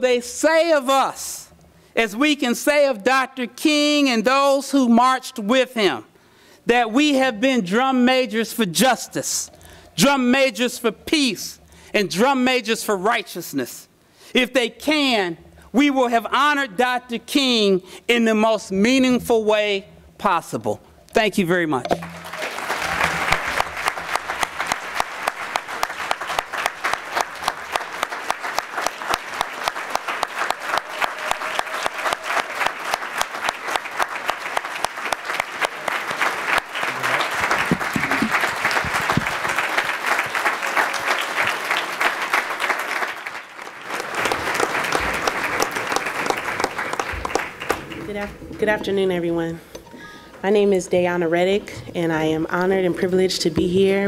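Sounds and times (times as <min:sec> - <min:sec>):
large audience applauding: 0:22.0 - 0:48.2.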